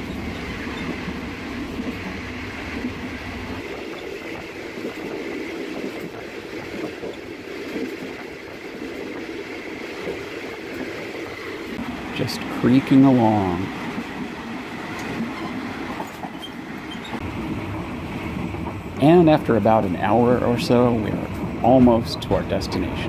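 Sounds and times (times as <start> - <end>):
train carriage creaking: 0.0 - 23.0
train rumbling and rattling: 0.0 - 23.0.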